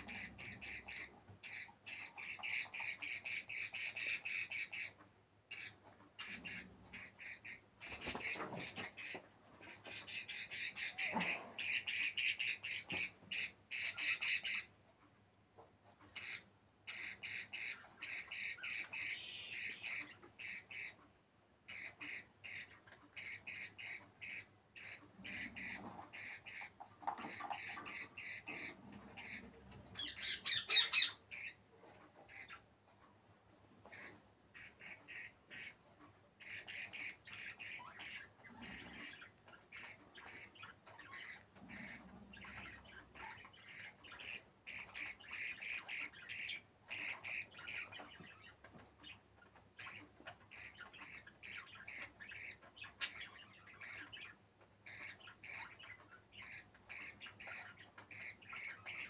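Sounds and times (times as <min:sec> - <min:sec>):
budgerigars chirping and squawking: 0:00.0 - 0:59.0.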